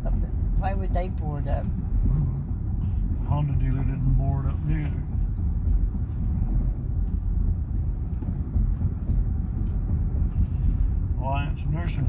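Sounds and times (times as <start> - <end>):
car interior road rumble: 0.0 - 12.0.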